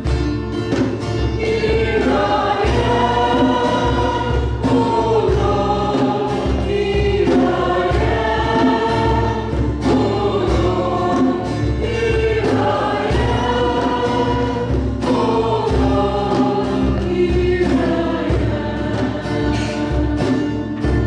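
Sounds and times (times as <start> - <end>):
instrumental accompaniment with bass: 0.0 - 21.0
choir singing worship song: 0.8 - 21.0.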